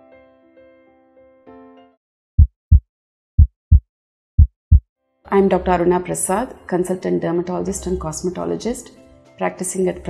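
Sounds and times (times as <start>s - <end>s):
heartbeat double thump: 2.4s - 2.8s, 3.4s - 3.8s, 4.4s - 4.8s.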